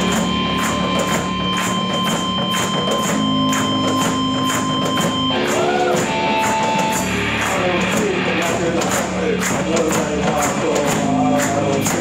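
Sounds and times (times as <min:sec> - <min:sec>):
rock band playing instrumental: 0:00.0 - 0:12.0.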